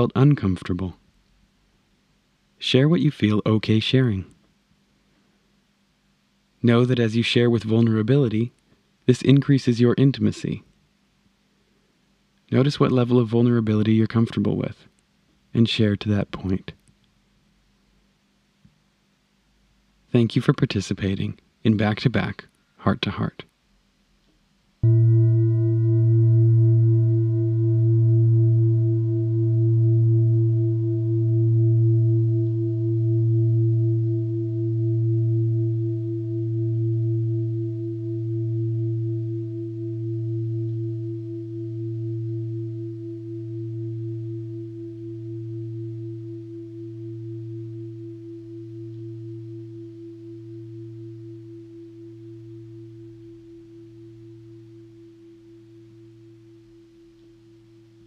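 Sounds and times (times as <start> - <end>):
singing bowl ringing: 24.8 - 58.0.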